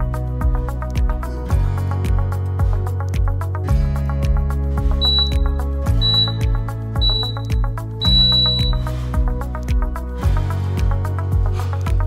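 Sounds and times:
background music with steady beat: 0.0 - 12.0
timer beeping: 5.0 - 9.0.

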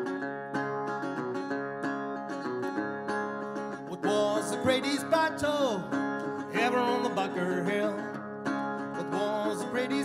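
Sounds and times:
resonator guitar country tune: 0.0 - 10.0
person singing: 3.9 - 8.2, 8.9 - 10.0.

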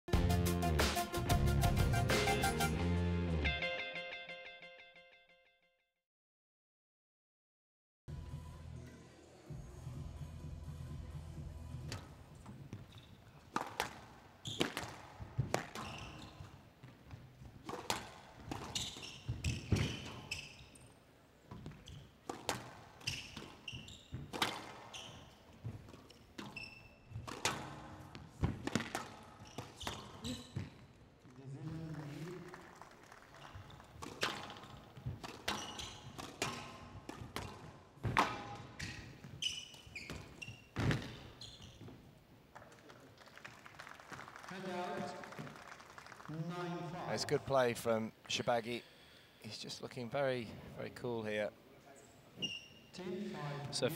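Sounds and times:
shoes squeaking on court: 11.9 - 31.1, 33.3 - 42.2, 52.2 - 53.0
squash ball striking walls: 13.5 - 16.4, 17.1 - 20.3, 21.5 - 24.9, 25.6 - 30.7, 34.0 - 39.4, 40.1 - 41.3.

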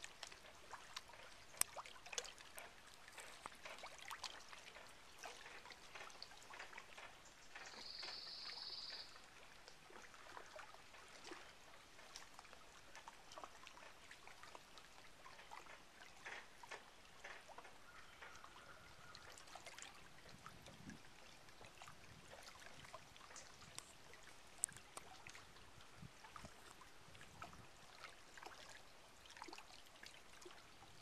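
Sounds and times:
small waves lapping at lake edge: 0.0 - 31.0
small ticks: 24.6 - 25.1.

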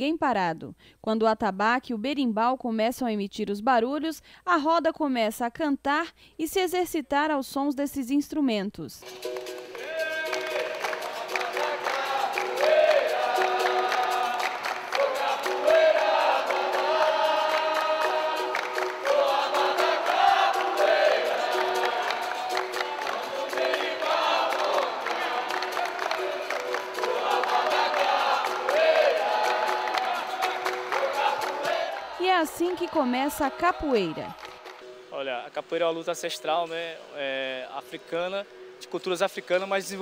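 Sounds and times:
berimbau and drum: 9.0 - 31.9
group singing: 9.5 - 34.8.

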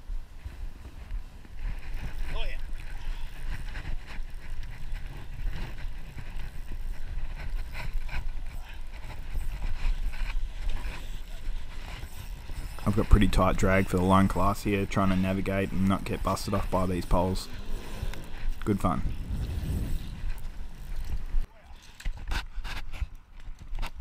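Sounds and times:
wind rumbling on microphone: 0.0 - 21.5.

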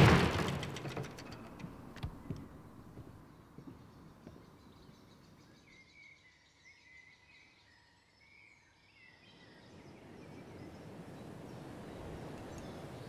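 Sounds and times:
faint outdoor ambience: 0.0 - 13.0
distant bird chirps: 0.8 - 13.0.

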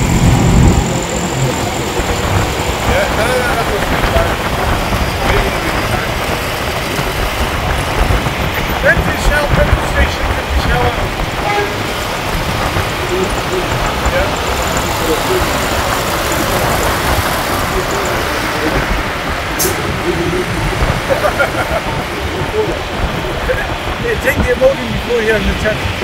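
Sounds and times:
road and wind noise: 0.0 - 26.0.

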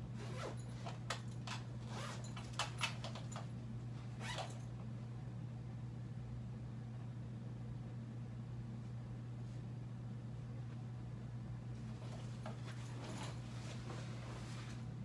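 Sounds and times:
steady low hum: 0.0 - 15.0
clothes rustling: 0.2 - 4.6, 11.8 - 15.0.

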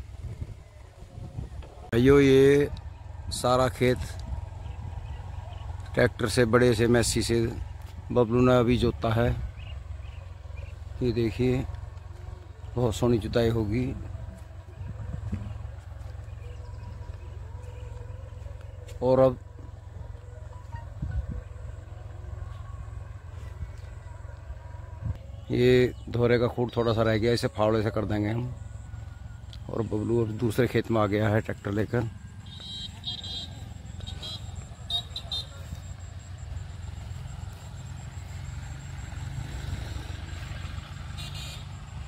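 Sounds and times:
wind rumbling on microphone: 0.0 - 6.2, 14.0 - 17.6, 20.8 - 21.6
faint distant engine hum: 0.0 - 42.0.

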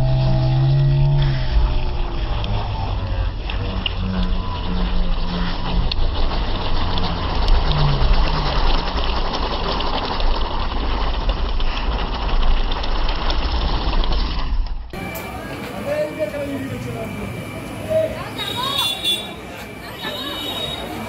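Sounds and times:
low rumble: 0.0 - 15.0.

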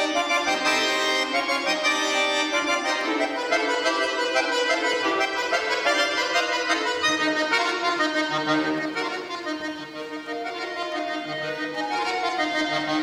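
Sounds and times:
button accordion playing: 0.0 - 13.0.

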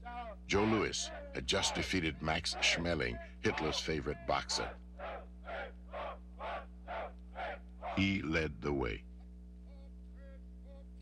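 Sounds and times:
steady low hum: 0.0 - 11.0
short evenly spaced calls: 3.5 - 8.1.

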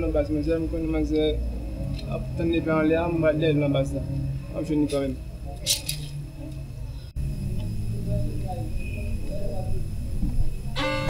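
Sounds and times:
faint indistinct voices: 0.0 - 11.0
plucked and bowed strings music: 10.7 - 11.0.

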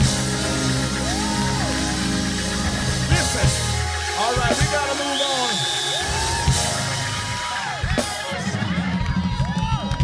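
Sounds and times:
live gospel band music: 0.0 - 10.0
audience whooping and yelling: 0.6 - 10.0.

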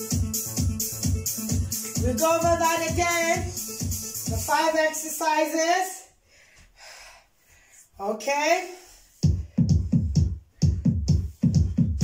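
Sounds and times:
person breathing out hard: 6.2 - 8.0.

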